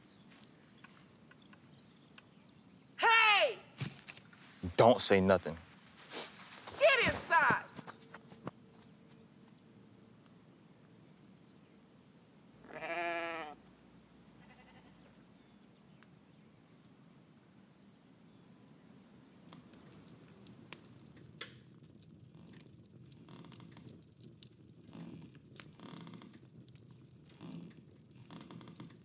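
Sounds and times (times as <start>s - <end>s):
faint background hush: 0.0s - 12.6s
goat bleating: 12.6s - 13.6s, 14.4s - 15.1s.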